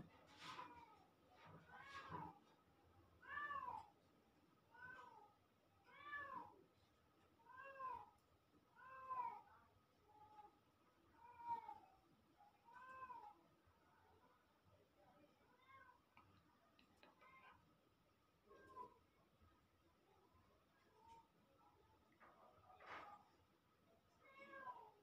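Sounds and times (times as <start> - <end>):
cat meowing faintly: 1.6 - 2.4, 3.2 - 3.9, 4.7 - 6.6, 7.4 - 8.1, 8.8 - 9.5, 11.2 - 12.0, 12.6 - 13.4, 18.5 - 19.0, 24.2 - 25.0.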